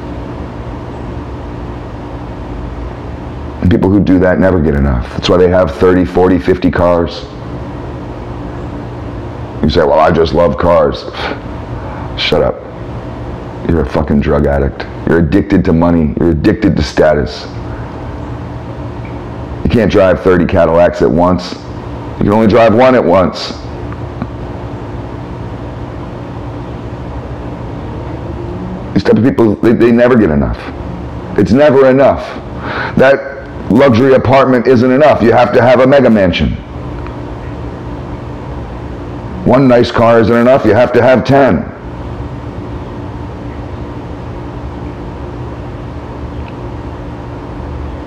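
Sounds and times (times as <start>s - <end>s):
level droning tones: 0.0s - 48.0s
low machine hum with hiss: 0.0s - 48.0s.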